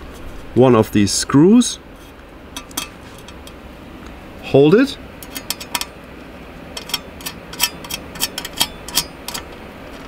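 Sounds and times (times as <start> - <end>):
small metal clicks and clinks: 6.8 - 9.6.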